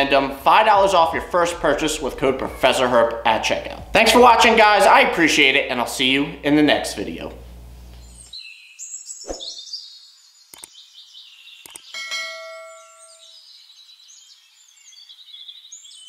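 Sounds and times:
birds chirping and trilling: 0:08.0 - 0:16.0
sharp clicks: 0:10.5 - 0:10.7, 0:11.6 - 0:11.9
ringing ding: 0:12.0 - 0:13.4.

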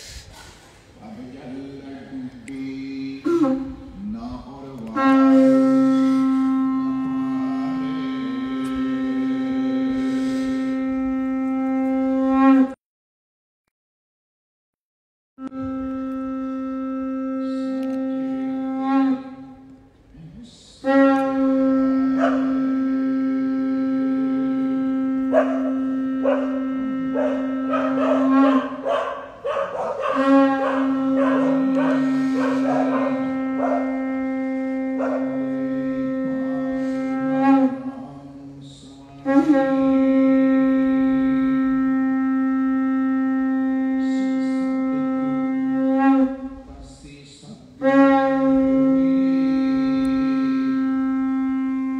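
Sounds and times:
conch shell blown: 0:00.0 - 0:12.8, 0:15.4 - 0:46.9, 0:47.7 - 0:51.9.

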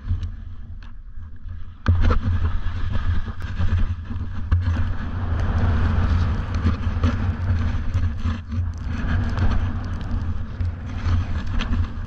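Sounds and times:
skis sliding over snow: 0:00.0 - 0:12.0
wind buffeting microphone: 0:00.0 - 0:12.0.

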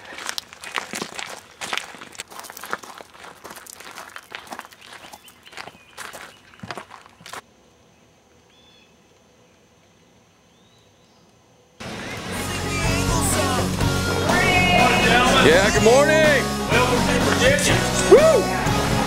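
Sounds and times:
footsteps on gravel: 0:00.0 - 0:07.5
faint bird chirps: 0:07.8 - 0:11.7.

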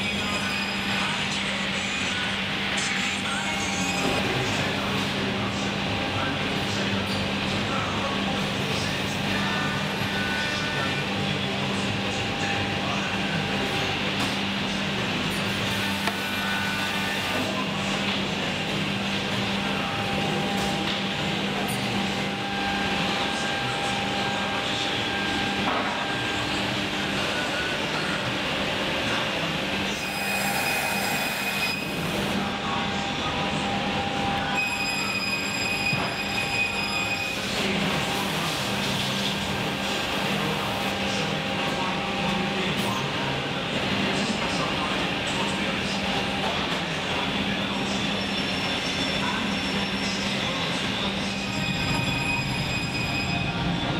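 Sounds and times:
saw machinery droning: 0:00.0 - 0:53.9.

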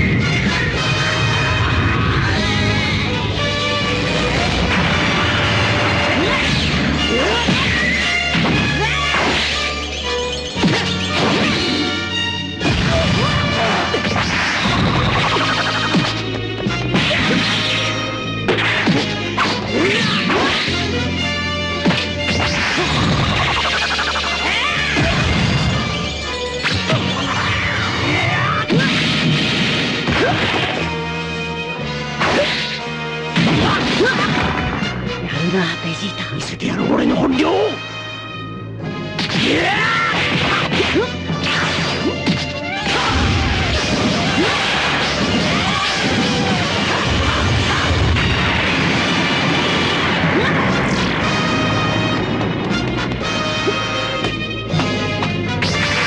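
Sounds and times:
dramatic background music: 0:00.0 - 0:56.0
punches landing with whacks: 0:12.6 - 0:20.9, 0:21.8 - 0:23.4, 0:28.7 - 0:30.9, 0:32.2 - 0:34.8, 0:39.2 - 0:49.4.

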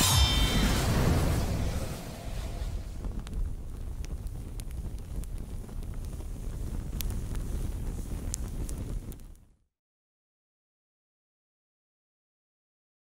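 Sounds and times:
fire rumbling and crackling: 0:00.0 - 0:09.6.

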